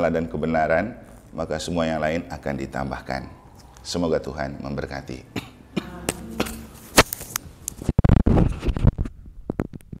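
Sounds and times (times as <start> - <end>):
microphone handling noise: 6.0 - 10.0.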